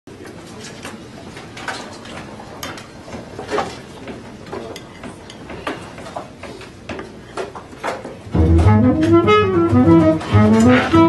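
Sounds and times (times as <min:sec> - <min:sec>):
murmur of room noise: 0:00.1 - 0:11.0.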